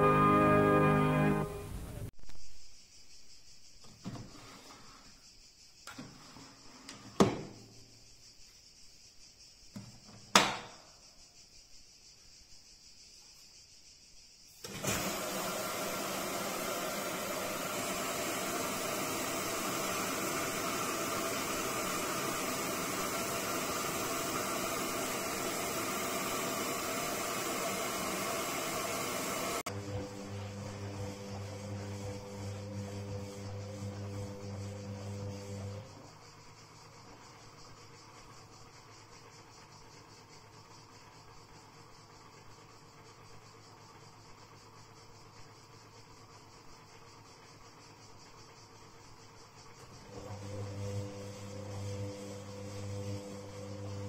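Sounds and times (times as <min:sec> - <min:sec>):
water rushing into washing machine: 0:14.6 - 0:35.9, 0:49.8 - 0:54.0
washing machine humming: 0:14.6 - 0:46.2, 0:47.0 - 0:54.0.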